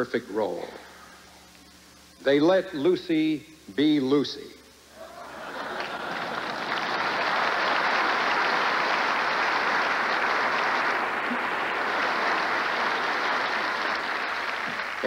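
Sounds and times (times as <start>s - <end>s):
audience applauding: 5.0s - 15.0s.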